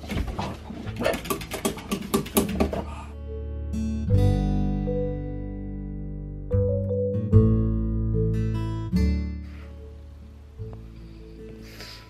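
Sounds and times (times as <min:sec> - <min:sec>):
acoustic guitar music: 0:00.7 - 0:12.0.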